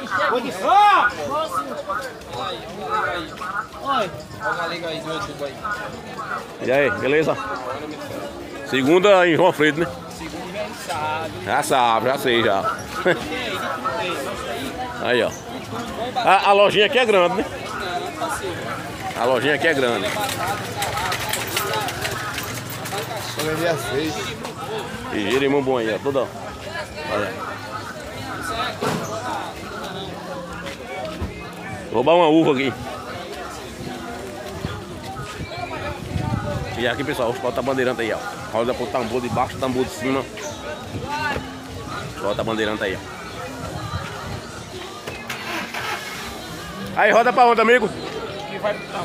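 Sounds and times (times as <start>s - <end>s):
faint voices: 0.0s - 49.0s
people talking: 0.0s - 49.0s.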